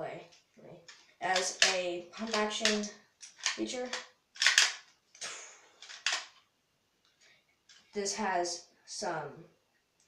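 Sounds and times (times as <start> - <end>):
plastic toy bricks clacking: 0.8 - 4.9, 5.8 - 6.4.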